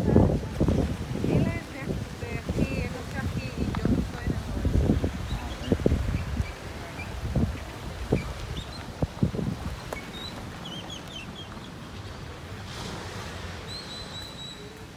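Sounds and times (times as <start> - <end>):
small birds chirping: 5.1 - 12.4, 13.7 - 14.8.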